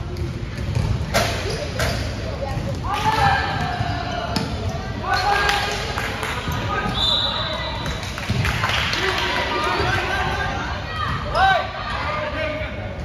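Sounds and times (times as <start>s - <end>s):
basketball bouncing on gym floor: 0.1s - 4.6s.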